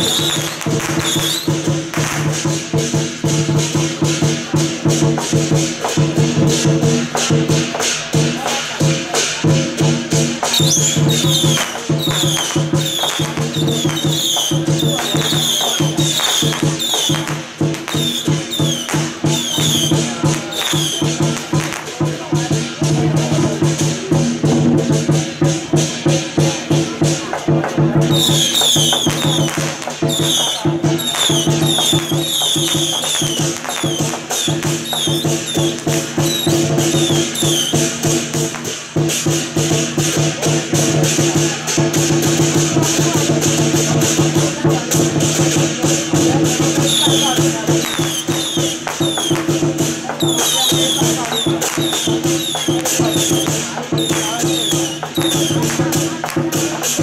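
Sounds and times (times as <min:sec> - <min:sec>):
fast percussion beat: 0:00.0 - 0:57.0.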